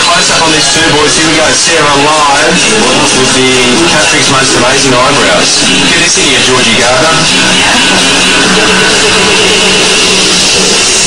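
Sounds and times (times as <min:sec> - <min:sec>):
distorted rock music through speakers: 0:00.0 - 0:11.0.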